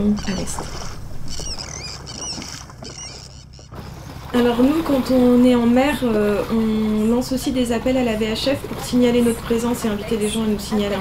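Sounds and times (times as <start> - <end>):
high warbling squeaks: 0.0 - 4.0
boat engine rumble: 0.0 - 11.0
water noise: 0.0 - 11.0.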